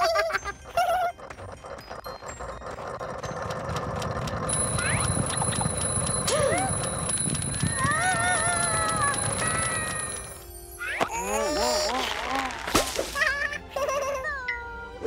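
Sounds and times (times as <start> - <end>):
music: 0.0 - 15.0
rumbling clatter: 1.2 - 10.4.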